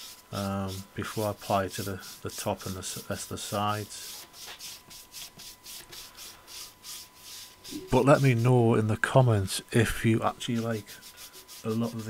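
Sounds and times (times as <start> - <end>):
paintbrush swishing on wood: 0.0 - 8.5, 10.4 - 12.0.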